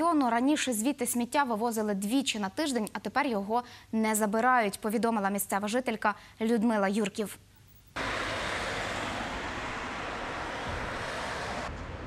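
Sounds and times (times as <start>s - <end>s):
car passing on asphalt: 8.0s - 12.0s
roadside traffic noise: 8.0s - 12.0s.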